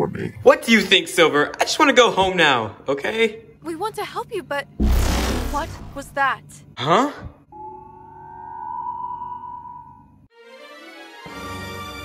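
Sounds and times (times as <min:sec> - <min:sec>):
eerie synthesized tone: 0:07.5 - 0:10.3
fainter lower tone: 0:07.5 - 0:10.3.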